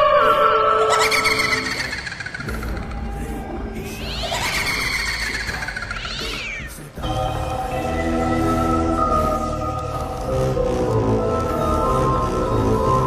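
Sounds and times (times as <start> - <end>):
cat-like yowls: 4.0 - 6.8.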